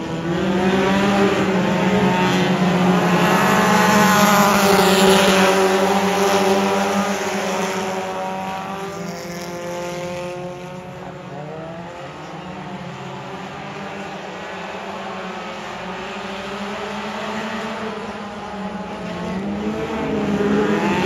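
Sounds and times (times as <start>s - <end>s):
race car engines passing: 0.0s - 21.0s.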